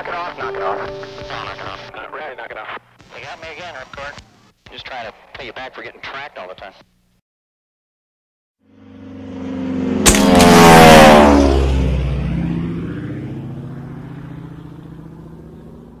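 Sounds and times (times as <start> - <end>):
propeller aircraft flying past: 8.6 - 16.0
sharp crack: 10.0 - 10.9.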